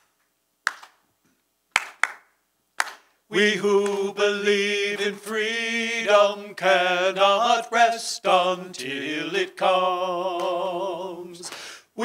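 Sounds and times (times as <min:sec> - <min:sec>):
hand claps: 0:00.6 - 0:01.0, 0:01.7 - 0:03.1, 0:03.8 - 0:04.1, 0:10.4 - 0:10.6.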